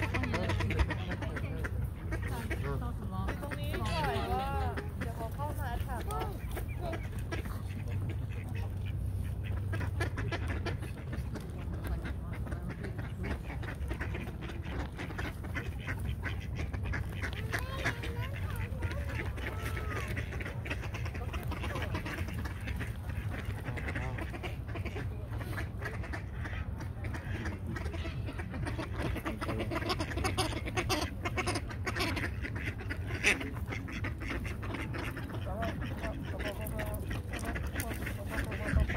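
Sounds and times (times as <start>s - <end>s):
ducks quacking: 0.0s - 38.9s
people's voices: 0.0s - 38.9s
steady low rumble: 0.0s - 38.9s.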